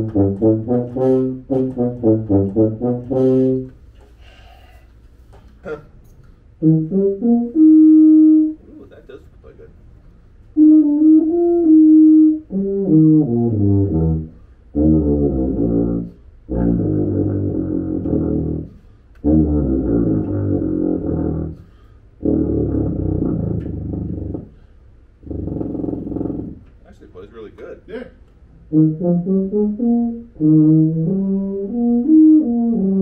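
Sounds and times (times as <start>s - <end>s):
tuba playing: 0.0s - 3.9s, 6.5s - 9.0s, 10.4s - 26.7s, 28.5s - 33.0s.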